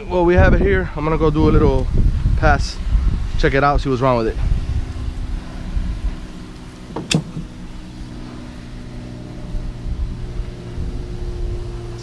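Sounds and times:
low mechanical hum: 0.0s - 12.0s
wind rumble on microphone: 0.0s - 12.0s.

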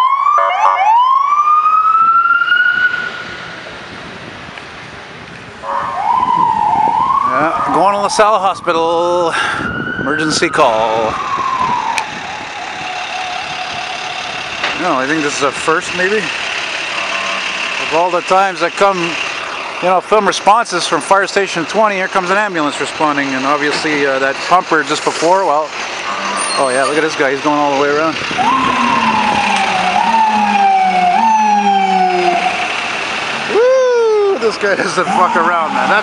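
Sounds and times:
emergency vehicle siren: 0.0s - 3.8s, 5.6s - 15.8s, 16.7s - 19.6s, 26.0s - 36.0s
city traffic: 0.0s - 36.0s.

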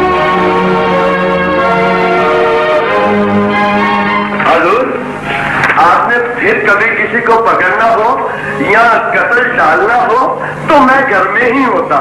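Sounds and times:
man speaking: 4.4s - 5.0s, 5.8s - 12.0s.

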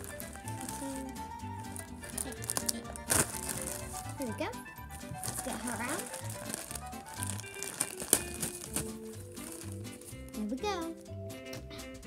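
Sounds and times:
plastic bag crinkling: 0.0s - 10.4s
background music with beat: 0.0s - 12.0s.

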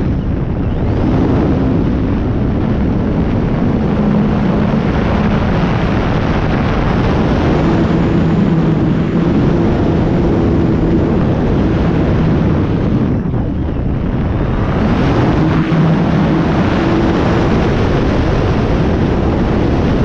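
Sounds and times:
airflow rushing over microphone: 0.0s - 20.0s
electric motor and propeller droning: 0.0s - 20.0s.

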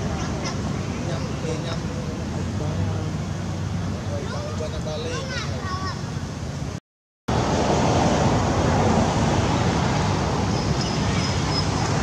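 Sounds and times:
rushing outdoor background noise: 0.0s - 12.0s.

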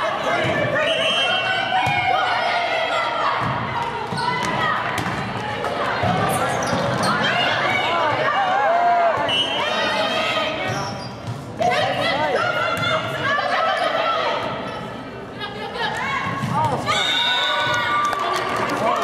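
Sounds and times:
voices calling out and cheering: 0.0s - 19.0s.

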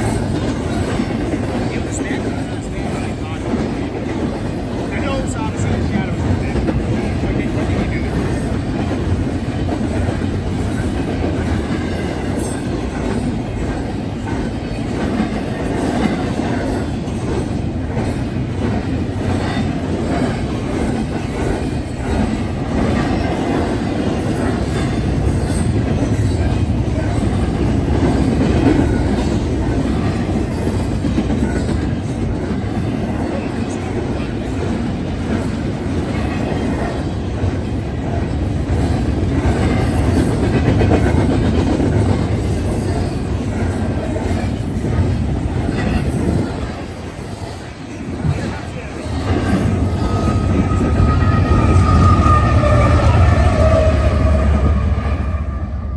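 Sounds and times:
freight train wheels rumbling: 0.0s - 55.9s.

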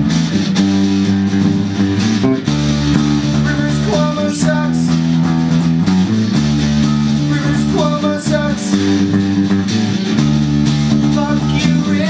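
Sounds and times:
bass guitar: 0.0s - 12.0s
electric guitar chords: 0.0s - 12.0s.

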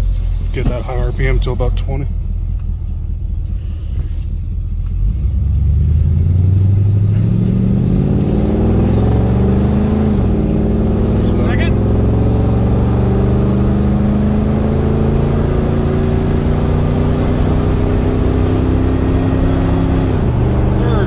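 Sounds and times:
car engine accelerating: 0.0s - 21.0s.

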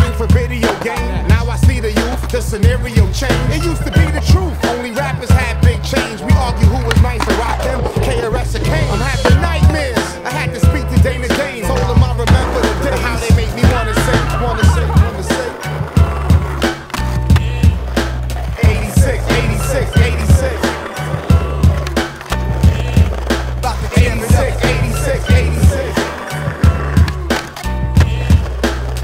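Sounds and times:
hip-hop beat: 0.0s - 29.0s
skateboard deck clacking: 0.0s - 29.0s
skateboard wheels rolling on asphalt: 0.0s - 29.0s.

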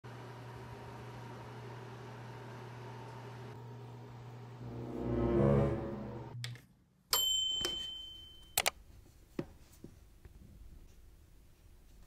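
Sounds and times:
music: 4.6s - 6.6s.

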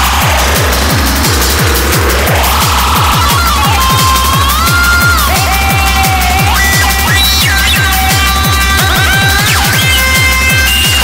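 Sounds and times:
techno kick drum: 0.0s - 11.0s.

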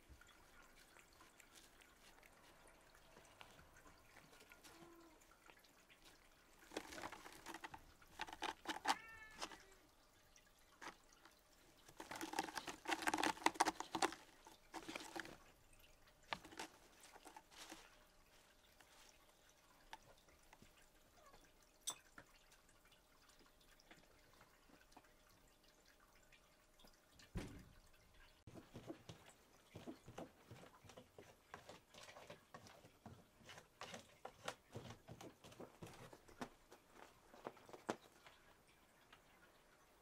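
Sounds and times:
cat licking: 0.0s - 9.8s.

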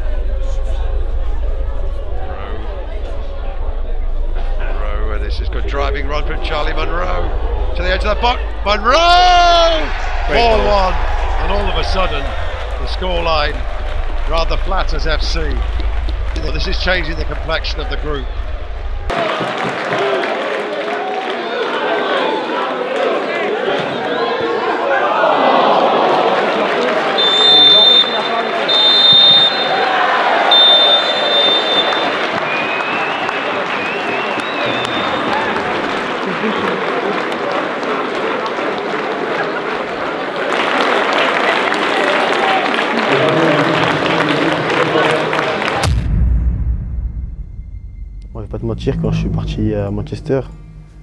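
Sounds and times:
stadium crowd cheering and shouting: 0.0s - 46.2s
referee's whistle: 27.1s - 35.4s.

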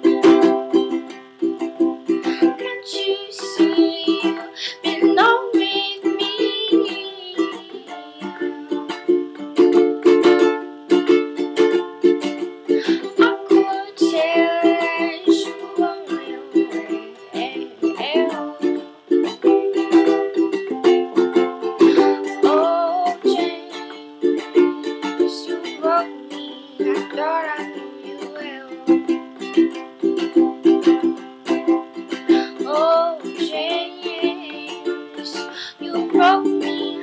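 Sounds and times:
person singing: 0.0s - 37.0s
ukulele strumming: 0.0s - 37.0s.

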